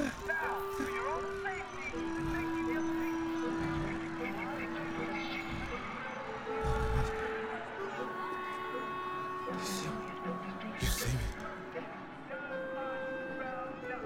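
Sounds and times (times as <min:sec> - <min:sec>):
film score with held notes: 0:00.0 - 0:14.0
murmur of voices: 0:00.0 - 0:14.0.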